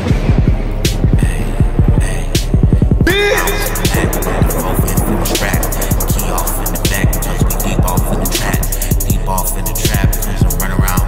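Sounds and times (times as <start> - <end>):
kick drum thuds: 0.0 - 9.3
heavy bass: 0.0 - 11.0
hip hop beat: 0.0 - 11.0
rapid hi-hats: 0.0 - 11.0.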